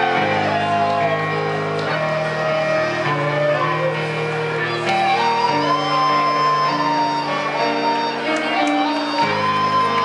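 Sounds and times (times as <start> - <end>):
slow instrumental melody: 0.0 - 10.0.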